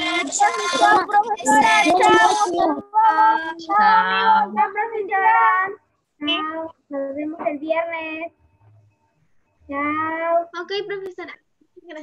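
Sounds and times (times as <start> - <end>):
children calling sing-song goodbyes: 0.0 - 7.6.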